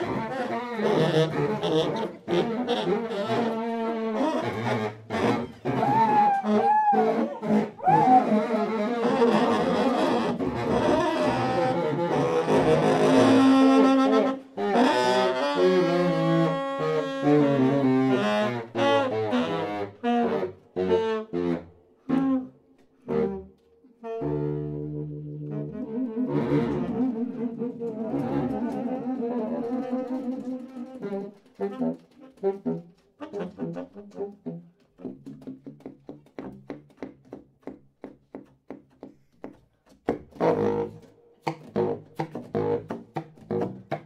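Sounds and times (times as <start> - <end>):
saxophone quartet playing blues: 0.0 - 35.4, 40.3 - 44.0.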